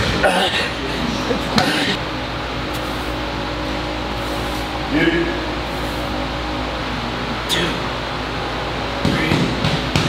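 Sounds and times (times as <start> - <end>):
room hum: 0.0 - 10.0.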